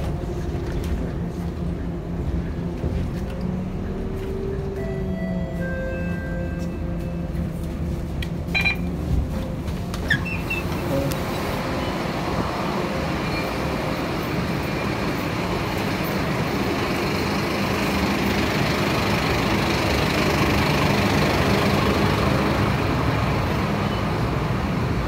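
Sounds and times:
bus engine humming: 0.0s - 25.0s
traffic noise: 0.0s - 25.0s.

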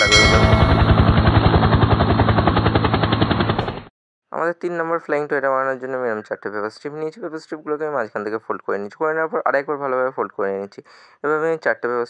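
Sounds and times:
helicopter rotor chopping: 0.0s - 3.9s.

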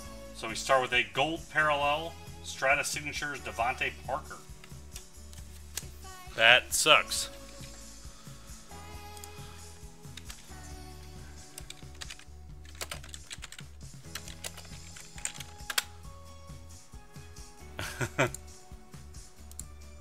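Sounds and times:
background music: 0.0s - 20.0s
typing on computer keyboard: 11.5s - 15.9s
person laughing: 17.7s - 18.5s.

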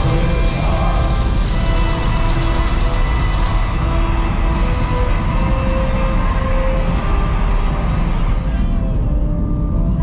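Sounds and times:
dramatic music: 0.0s - 10.0s.

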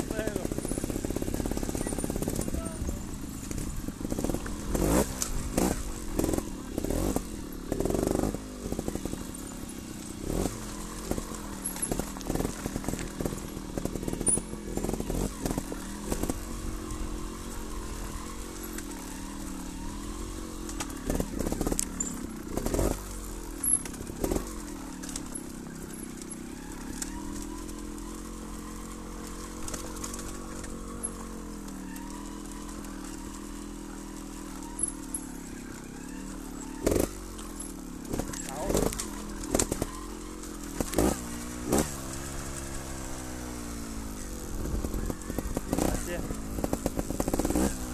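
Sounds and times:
knocks and clatter over stones: 0.0s - 47.9s
motorcycle engine revving: 0.0s - 47.9s.

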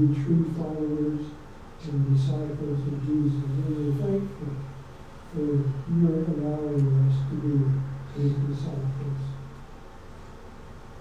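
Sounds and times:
man speaking a prayer: 0.0s - 4.7s, 5.3s - 9.5s.

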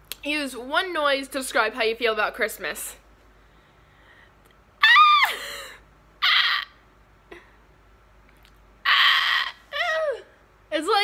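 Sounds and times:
woman shrieking breathily: 4.8s - 6.7s
woman squealing: 4.8s - 6.8s, 8.8s - 10.3s
woman whining: 8.9s - 10.3s.

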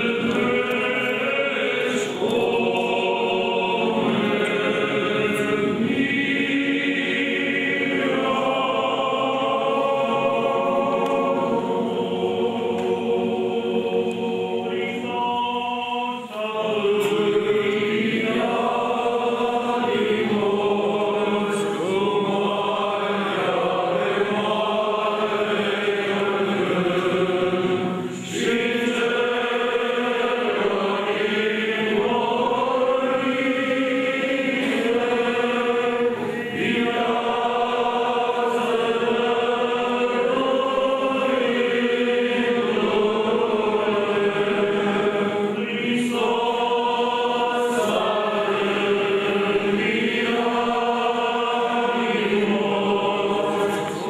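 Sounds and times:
group of voices chanting: 0.0s - 54.0s.

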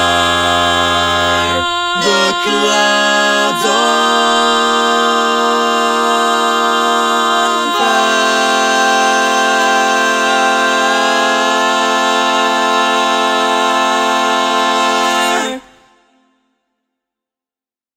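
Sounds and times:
men singing barbershop harmony: 0.0s - 15.9s.

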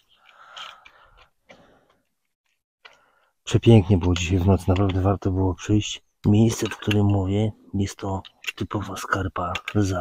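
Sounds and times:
faint breath: 0.1s - 2.1s, 2.8s - 3.4s
person speaking: 3.4s - 10.0s.

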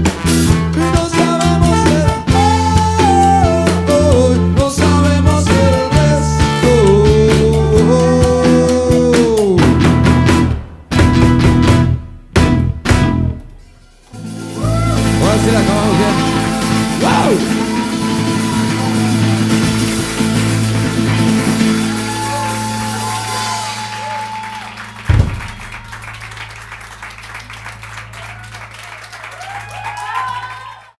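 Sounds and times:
acoustic rock band chord: 0.0s - 13.4s, 14.1s - 26.1s
light clapping: 24.4s - 30.8s
low thump: 25.1s - 25.9s.

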